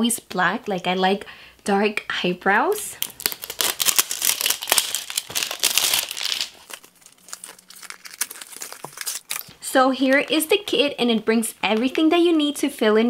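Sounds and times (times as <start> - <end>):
packaging crinkling and crackling: 3.0 - 9.6.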